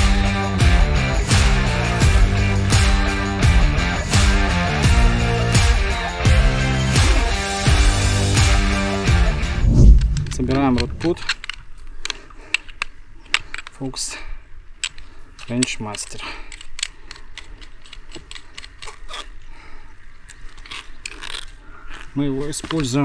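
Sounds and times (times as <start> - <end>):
music: 0.0 - 9.9.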